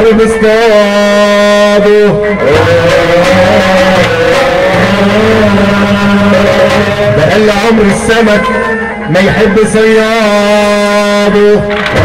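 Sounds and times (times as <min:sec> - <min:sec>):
sustained instrumental tones: 0:00.0 - 0:12.0
folk singing: 0:00.2 - 0:12.0.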